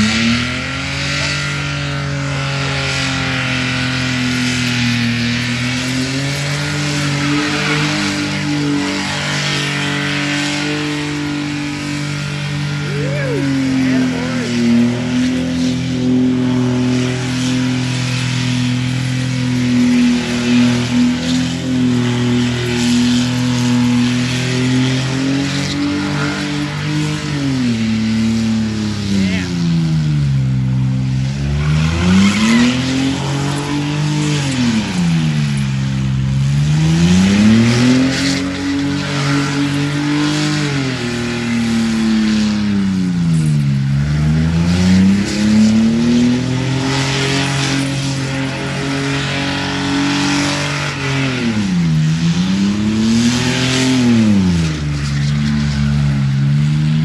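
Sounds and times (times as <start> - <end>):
car engine revving high: 0.0 - 57.0.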